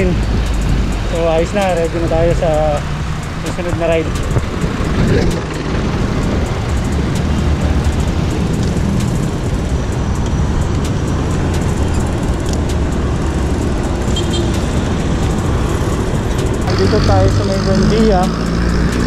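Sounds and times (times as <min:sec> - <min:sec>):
wind on microphone: 0:00.0 - 0:17.3
city traffic noise: 0:00.0 - 0:19.0.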